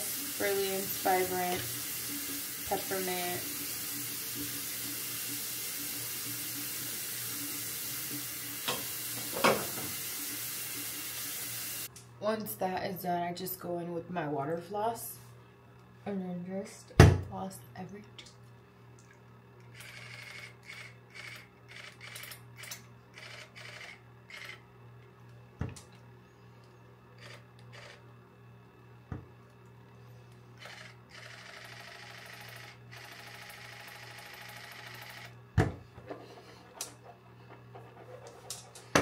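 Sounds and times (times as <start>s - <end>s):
water flosser hissing: 0.0s - 11.9s.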